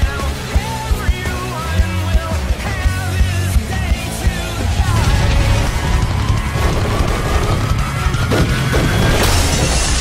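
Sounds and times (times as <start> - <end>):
trailer music with heavy bass: 0.0 - 10.0
glass shattering: 8.4 - 10.0.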